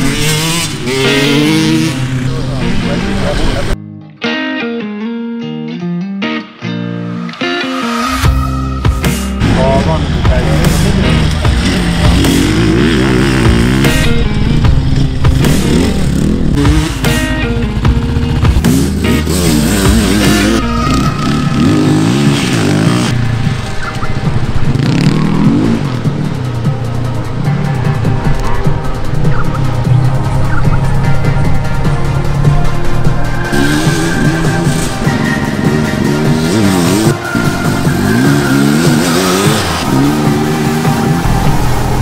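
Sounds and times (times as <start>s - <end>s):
music with steady beat: 0.0s - 2.0s, 4.2s - 42.0s
dirt bike engine revving: 0.0s - 3.8s, 9.0s - 42.0s.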